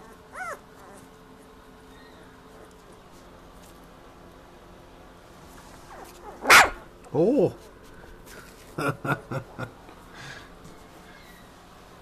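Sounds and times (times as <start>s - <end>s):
puppy barking: 5.9s - 6.9s.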